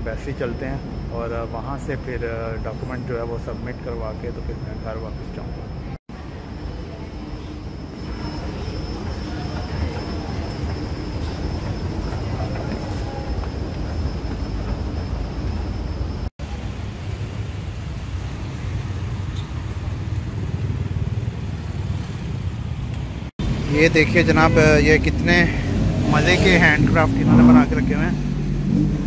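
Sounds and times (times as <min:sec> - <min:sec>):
faint high whine: 0:00.0 - 0:16.8
street traffic rumble: 0:00.0 - 0:29.0.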